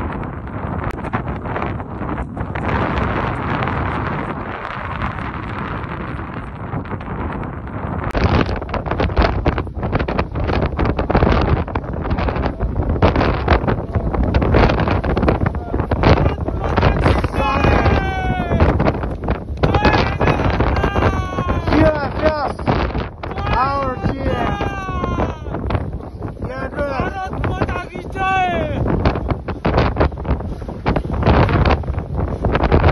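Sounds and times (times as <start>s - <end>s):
wind buffeting microphone: 0.0s - 32.9s
person calling out: 15.6s - 18.8s, 19.6s - 22.6s, 23.3s - 25.7s, 26.5s - 28.9s.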